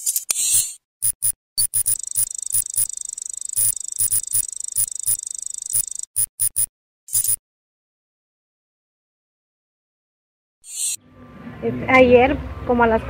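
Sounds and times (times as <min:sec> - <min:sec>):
digital blips and clicks: 0:00.0 - 0:07.4
fluttering electronic buzz: 0:01.0 - 0:07.4.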